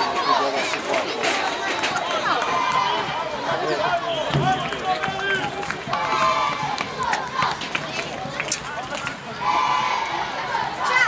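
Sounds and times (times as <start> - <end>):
crowd of voices calling and chatting: 0.0 - 11.0.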